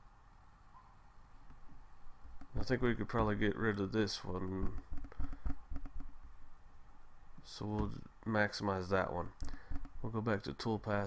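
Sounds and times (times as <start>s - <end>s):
computer mouse clicks: 4.6s - 6.2s, 9.4s - 10.0s.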